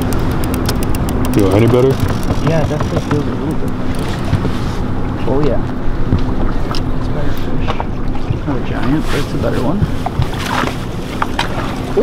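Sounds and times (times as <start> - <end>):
outboard motor humming: 0.0 - 12.0.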